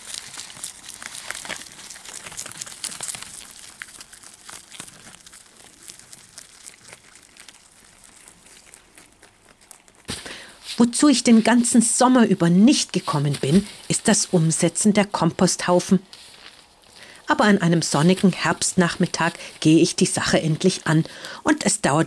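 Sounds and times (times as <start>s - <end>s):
rabbit chewing leaves: 0.0s - 22.0s.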